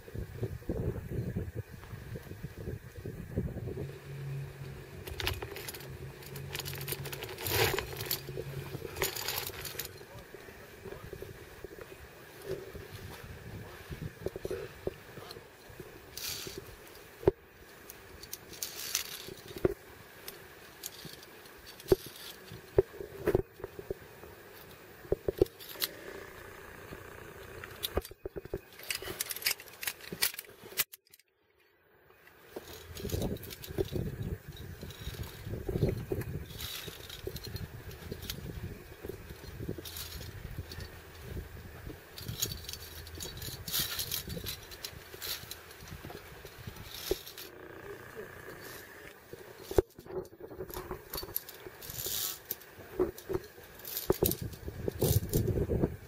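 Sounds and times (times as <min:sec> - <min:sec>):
carabiners clinking on steel cable: 0:03.7 - 0:31.7, 0:32.5 - 0:56.0.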